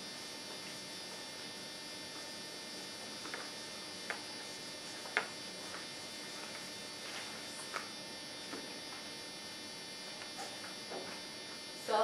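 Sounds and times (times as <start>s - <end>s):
electrical buzz and hum: 0.0s - 12.0s.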